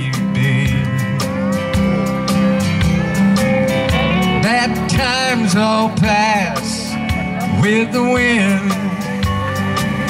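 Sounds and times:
steady drum beat: 0.0 - 10.0
strummed guitar: 0.0 - 10.0.

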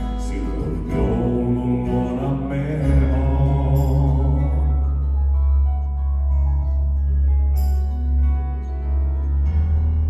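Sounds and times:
male voices singing in harmony: 0.0 - 5.1
acoustic guitar: 0.0 - 10.0
deep bass note: 0.0 - 10.0.

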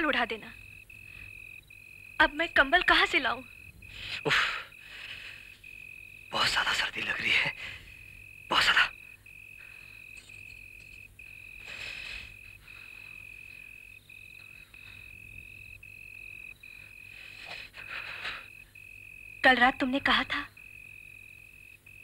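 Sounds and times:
crickets chirping: 0.0 - 22.0.

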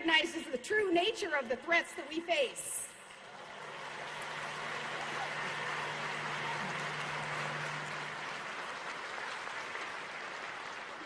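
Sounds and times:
faint low hum: 3.1 - 11.0
audience applauding: 3.2 - 11.0.

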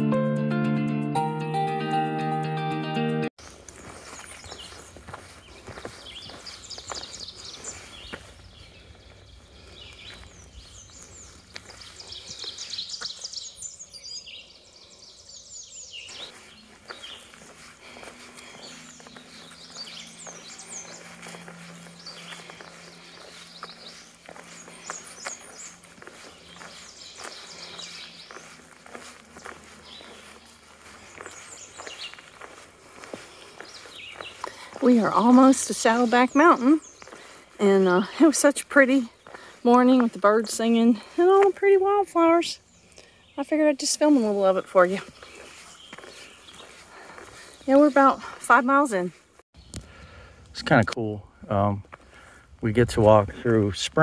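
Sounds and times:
footsteps on a dirt trail: 3.4 - 51.0, 51.7 - 54.0
songbirds singing and chirping: 3.4 - 54.0.

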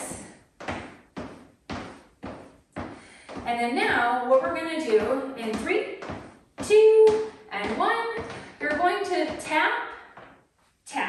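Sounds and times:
footsteps on wooden floor: 0.0 - 10.7.

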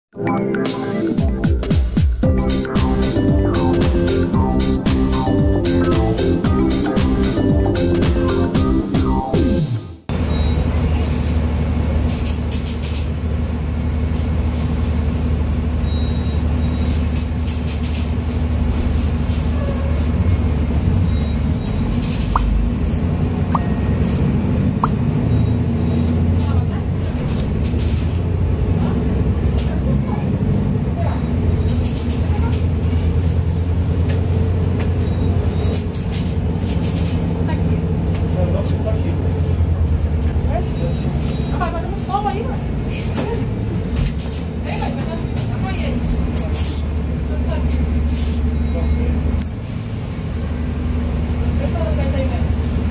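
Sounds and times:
bus diesel engine droning: 2.3 - 52.9.

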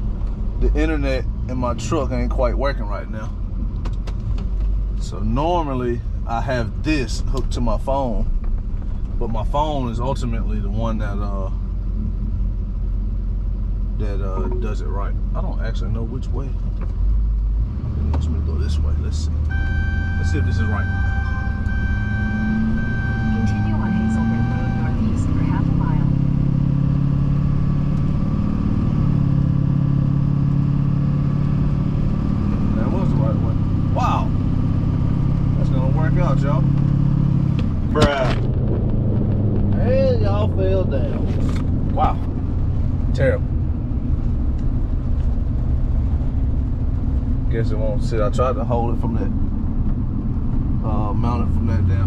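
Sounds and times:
truck engine and road noise: 0.0 - 52.0.

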